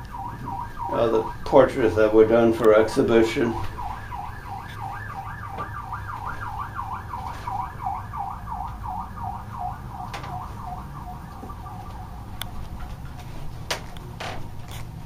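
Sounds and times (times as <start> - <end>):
emergency siren yelping: 0.0 - 13.6.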